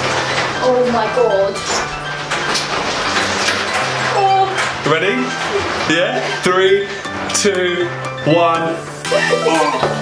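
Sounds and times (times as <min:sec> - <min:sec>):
background music with light beat: 0:00.0 - 0:10.0.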